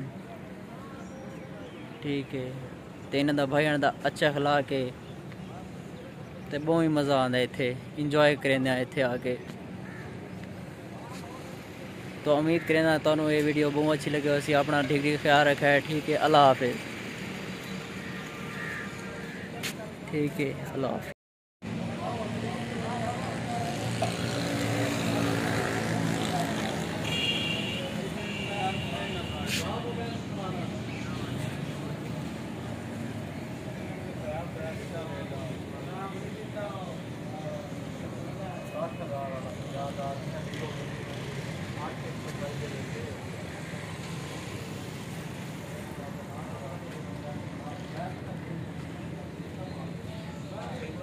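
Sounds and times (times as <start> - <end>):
people talking: 27.7 - 31.5.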